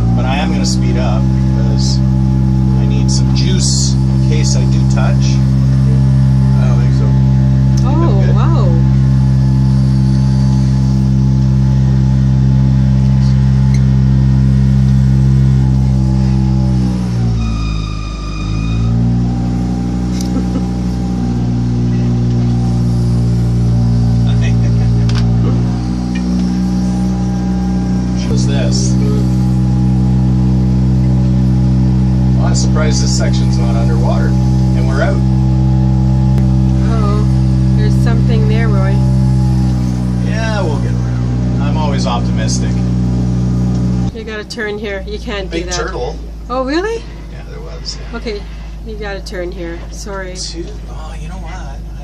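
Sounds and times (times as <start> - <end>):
outboard motor running: 0.0 - 52.0.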